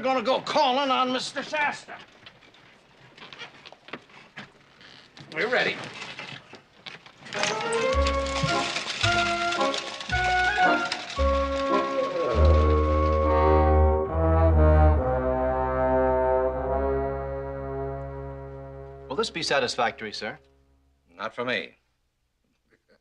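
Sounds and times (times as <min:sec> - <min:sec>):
orchestral music with brass: 0:09.8 - 0:19.5.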